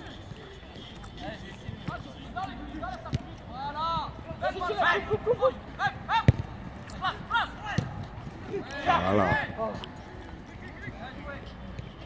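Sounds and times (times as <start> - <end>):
players shouting: 1.8 - 9.6.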